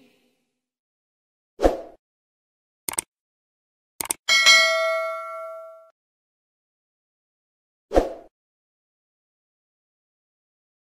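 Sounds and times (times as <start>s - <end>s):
mouse clicks: 2.9s - 3.1s, 4.0s - 4.2s
notification bell ding: 4.3s - 5.9s.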